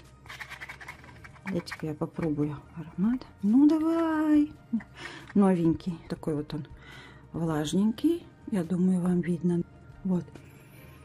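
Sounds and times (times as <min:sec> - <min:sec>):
plastic bottle rustling and clicking: 0:00.0 - 0:02.4.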